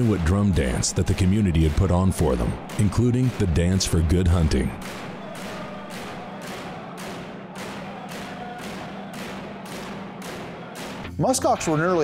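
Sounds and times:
frame drums beaten: 0.0 - 11.8.

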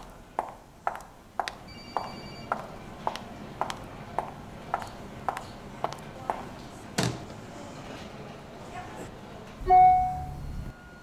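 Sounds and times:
footsteps on hard floor: 0.0 - 6.5
telephone ringing: 1.7 - 2.6.

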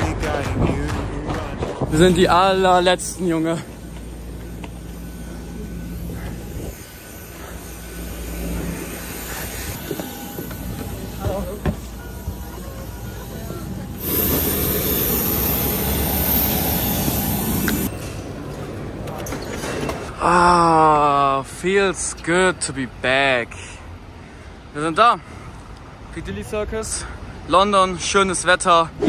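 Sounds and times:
aircraft and ground equipment hum: 0.0 - 20.7
rushing noise with hiss: 6.0 - 17.9.

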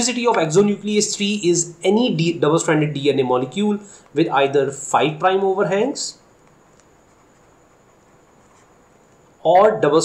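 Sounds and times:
low room hiss: 0.0 - 10.0
stylus scratching on tablet: 8.4 - 8.8.

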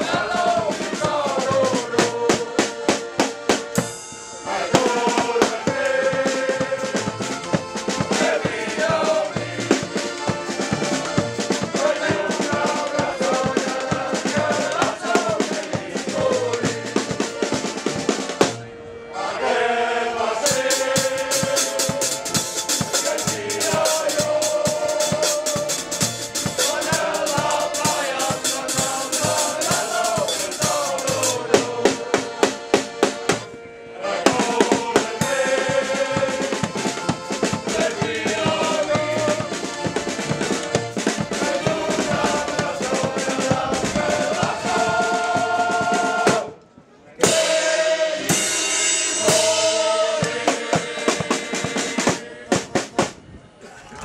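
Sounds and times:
male choir singing in unison: 0.0 - 3.4, 4.4 - 18.5, 19.1 - 53.0
drum kit: 0.0 - 18.6, 20.5 - 33.5, 34.3 - 46.5, 47.2 - 53.2
accordion: 0.0 - 53.3.

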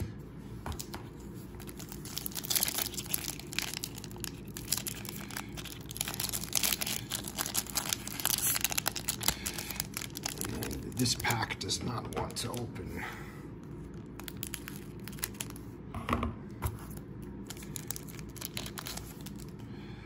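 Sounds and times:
plastic wrapper crinkling and tearing: 0.8 - 12.7, 13.8 - 15.7, 16.8 - 19.6.

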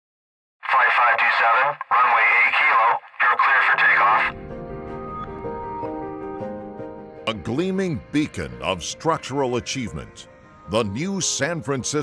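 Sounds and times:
person speaking over radio: 0.6 - 4.3.

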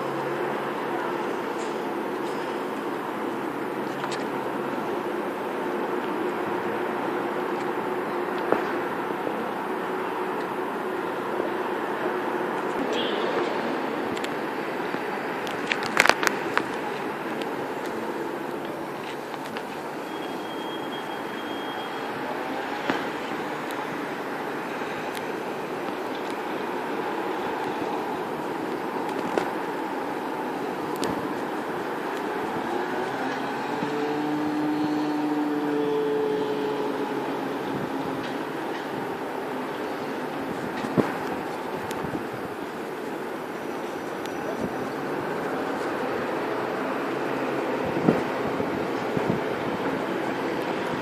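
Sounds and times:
diesel train engines humming: 0.0 - 51.0.

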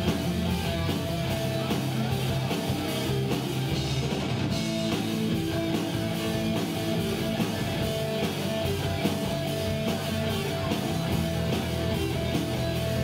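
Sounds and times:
drum kit pounding: 0.0 - 13.0
electric guitars sustained notes: 0.0 - 13.0.

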